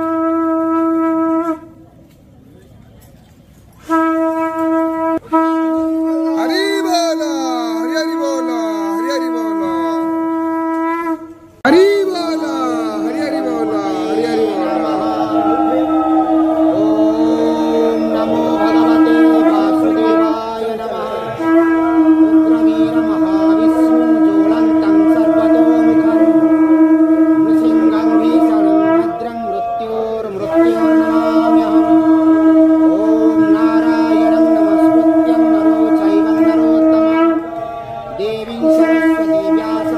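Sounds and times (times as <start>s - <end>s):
conch shell wavering pitch: 0.0s - 1.8s, 3.8s - 39.9s
conch shell steady note: 0.0s - 1.9s, 3.8s - 39.9s.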